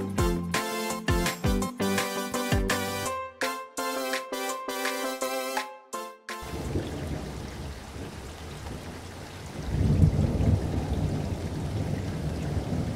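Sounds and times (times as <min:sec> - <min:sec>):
wind buffeting microphone: 0:06.6 - 0:12.9.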